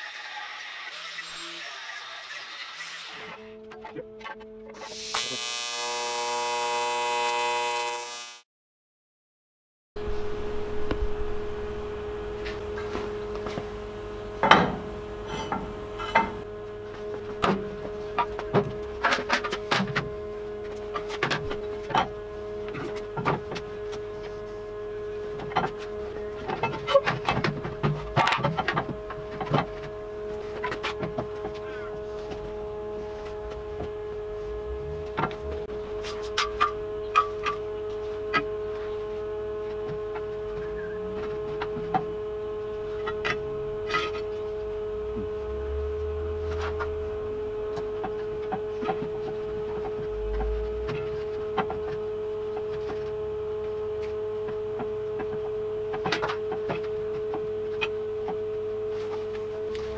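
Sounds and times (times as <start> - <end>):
steady hum: 10.0 - 59.9.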